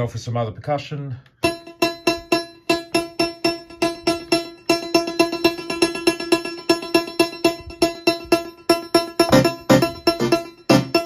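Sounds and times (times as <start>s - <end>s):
synthesizer metallic percussion hits: 1.4s - 11.0s.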